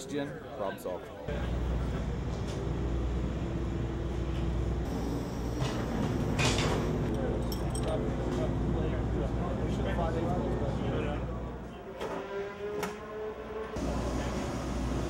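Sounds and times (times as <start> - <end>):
metallic clinks of tools: 6.6 - 8.1.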